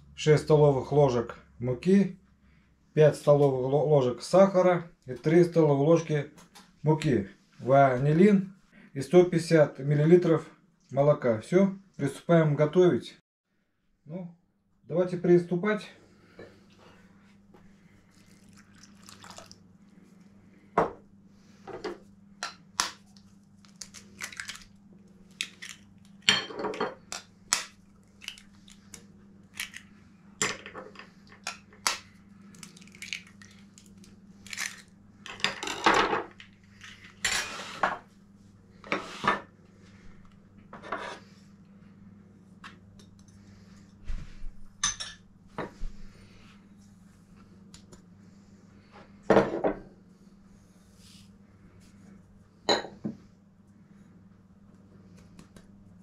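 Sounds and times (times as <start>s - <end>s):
steady low hum: 14.0s - 56.0s.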